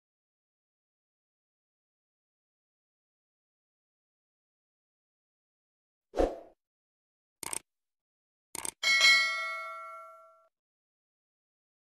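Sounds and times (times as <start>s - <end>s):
bright bell ding: 8.8s - 10.5s.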